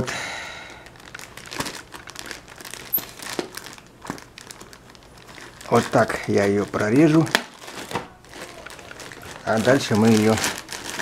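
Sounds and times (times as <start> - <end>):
plastic mailer bag crinkling: 0.8 - 11.0.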